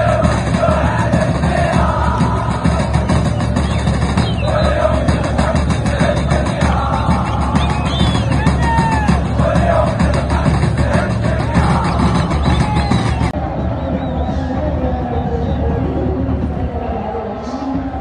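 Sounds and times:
song with singing voice: 0.0s - 13.5s
heavy bass: 0.0s - 16.7s.

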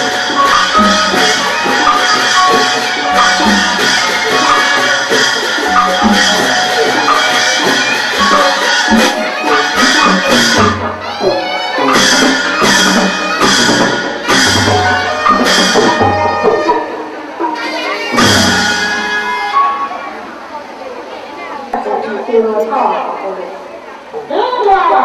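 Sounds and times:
ensemble music with percussion: 0.0s - 20.4s.

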